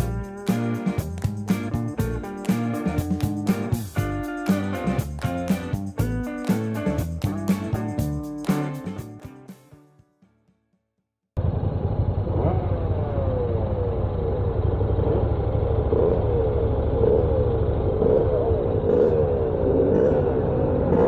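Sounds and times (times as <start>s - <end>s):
motorcycle engine running: 11.4s - 21.0s.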